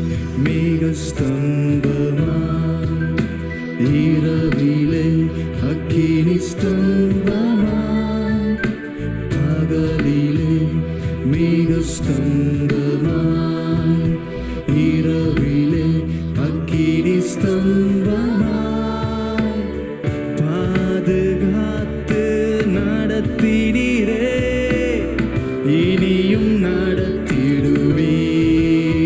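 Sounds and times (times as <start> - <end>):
keyboard and bass accompaniment: 0.0 - 29.0
person singing worship song: 0.0 - 29.0.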